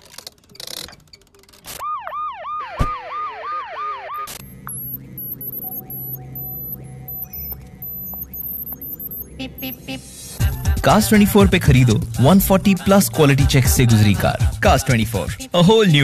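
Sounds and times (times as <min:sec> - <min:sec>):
siren-like warbling tone: 0:01.8 - 0:10.4
low steady hum: 0:04.3 - 0:11.3
short high beeps: 0:04.4 - 0:10.1.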